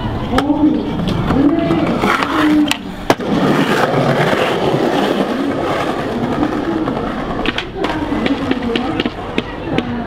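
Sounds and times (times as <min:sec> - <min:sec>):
skateboard wheels rolling on concrete: 0:00.0 - 0:10.0
skateboard landing clack: 0:02.2 - 0:04.3, 0:07.3 - 0:10.0.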